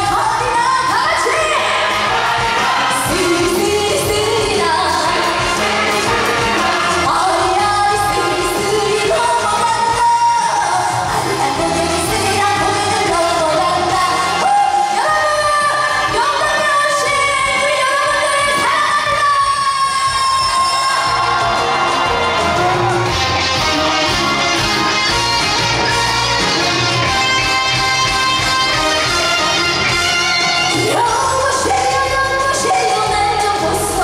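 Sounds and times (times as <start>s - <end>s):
backing music: 0.0s - 34.0s
woman singing into microphone: 2.5s - 21.2s, 30.8s - 34.0s.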